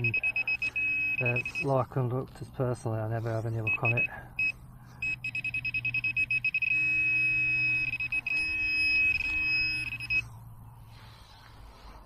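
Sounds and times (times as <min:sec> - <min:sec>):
metal detector pinpointer beeping: 0:00.0 - 0:01.8, 0:03.6 - 0:10.4.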